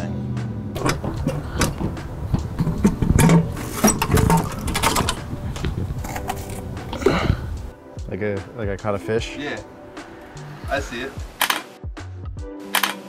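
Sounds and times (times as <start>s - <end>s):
metal clanks and knocks: 0.8s - 7.0s.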